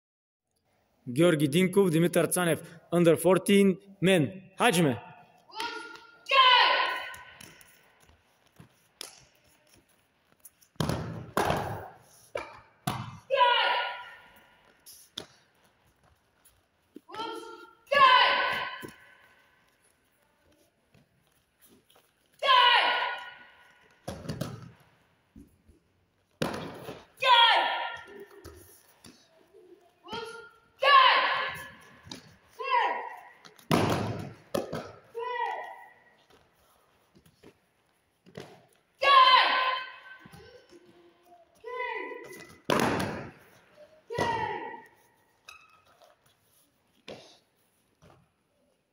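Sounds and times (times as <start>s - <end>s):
boy shouting: 5.5s - 7.4s, 13.2s - 14.3s, 17.1s - 19.0s, 22.4s - 23.5s, 27.2s - 28.2s, 30.0s - 31.8s, 32.6s - 33.3s, 35.1s - 36.0s, 39.0s - 40.6s, 41.6s - 42.4s, 44.1s - 45.0s.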